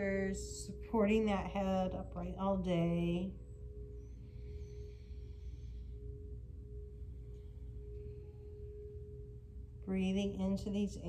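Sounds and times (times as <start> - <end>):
low rumble: 0.0 - 11.0
steady sustained tone: 0.0 - 11.0.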